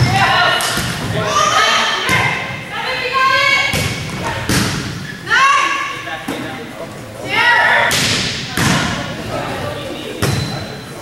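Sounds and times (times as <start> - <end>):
volleyball struck with echoing thuds: 0.0 - 1.2, 3.6 - 5.1, 7.8 - 9.2, 10.2 - 10.6.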